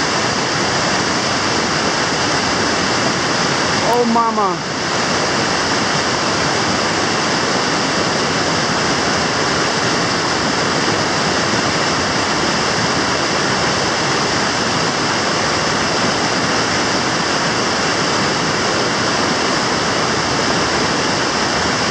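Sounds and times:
whitewater rapids roaring: 0.0 - 21.9.

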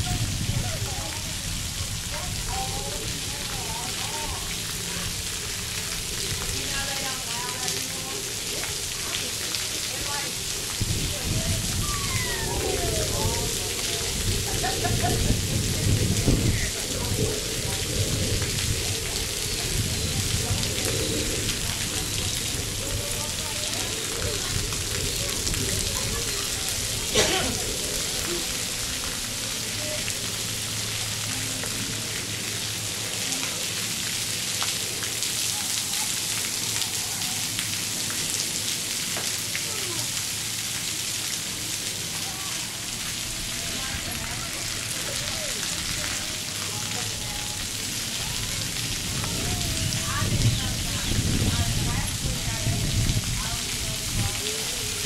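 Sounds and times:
fountains spraying onto wet pavement: 0.0 - 55.0.

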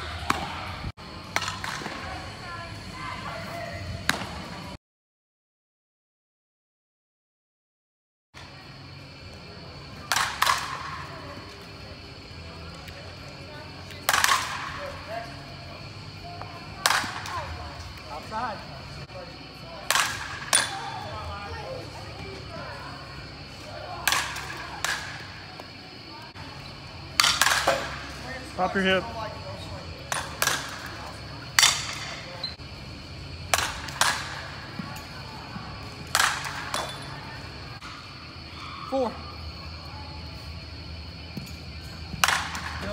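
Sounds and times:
bat hitting balls: 1.3 - 2.0, 10.0 - 11.0, 14.0 - 14.9, 16.4 - 17.6, 19.8 - 20.9, 24.0 - 25.3, 27.1 - 28.2, 30.1 - 32.3, 33.4 - 35.0, 36.0 - 37.1, 41.3 - 42.9.

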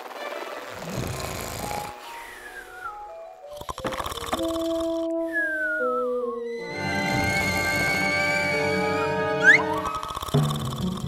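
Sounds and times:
cartoon snore with whistle: 0.7 - 8.5, 9.4 - 11.0.

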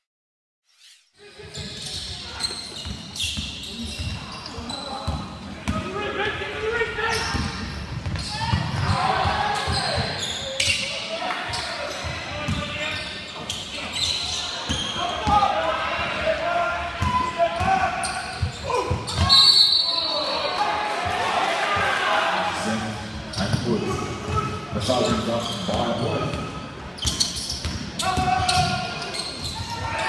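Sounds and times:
people shouting in a gym: 3.7 - 22.6, 23.3 - 25.1, 27.9 - 30.0.

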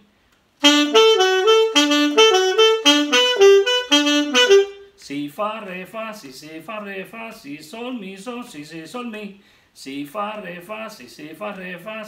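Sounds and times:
alto saxophone phrase: 0.6 - 5.0.

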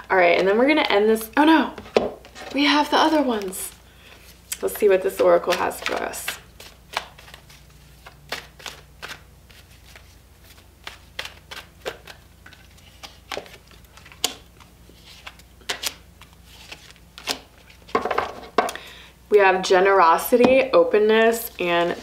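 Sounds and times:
cards being shuffled: 2.2 - 18.6.

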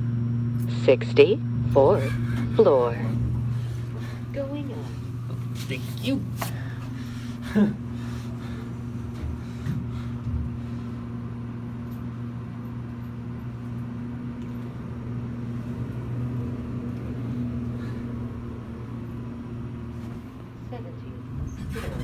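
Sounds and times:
elevator low hum: 0.0 - 22.0.

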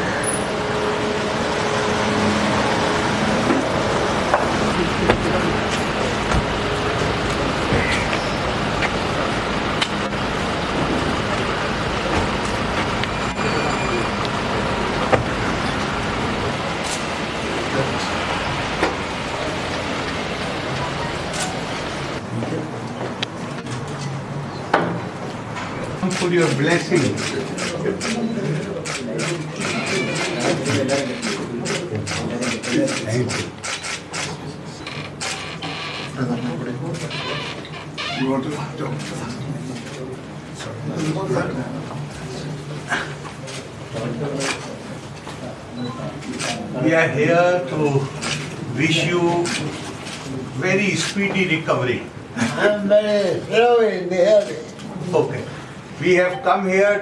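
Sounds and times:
rushing background noise: 0.0 - 36.7
men talking quietly: 0.0 - 57.0.

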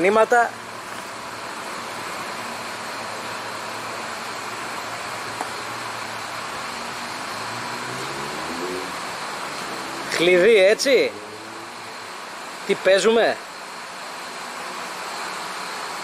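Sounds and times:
street background hiss: 0.0 - 16.0
faint rising tone: 6.9 - 12.1.

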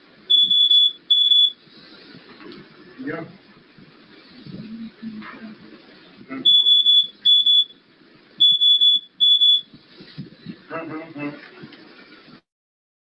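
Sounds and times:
electronic alarm beeps: 0.3 - 1.6, 6.4 - 7.8, 8.4 - 9.7.

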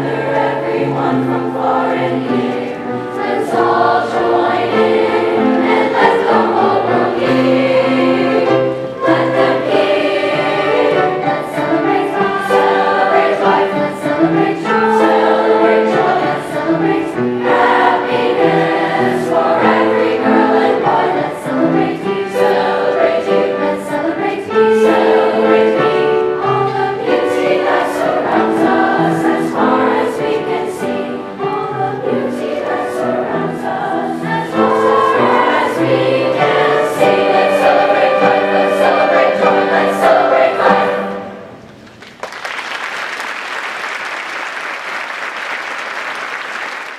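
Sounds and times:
children's choir singing: 0.0 - 41.8
piano accompaniment: 0.0 - 41.8.

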